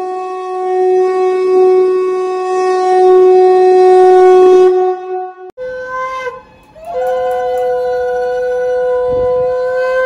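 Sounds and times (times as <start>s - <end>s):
conch shell blown: 0.0s - 10.0s.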